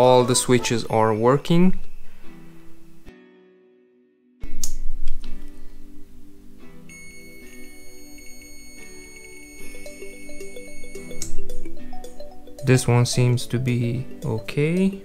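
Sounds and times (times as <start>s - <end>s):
multimeter high beep: 6.9s - 11.4s.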